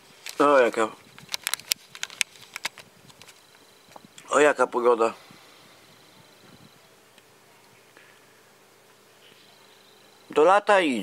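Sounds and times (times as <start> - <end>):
faint low buzz: 2.8 - 11.0.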